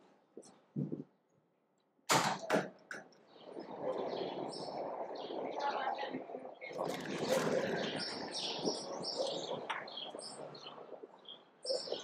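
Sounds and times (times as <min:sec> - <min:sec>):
city street background noise: 0:00.0 - 0:12.0
birds chirping: 0:03.2 - 0:12.0.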